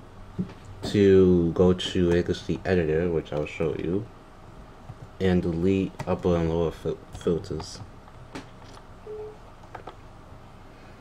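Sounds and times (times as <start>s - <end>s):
laptop beep: 9.1s - 9.4s.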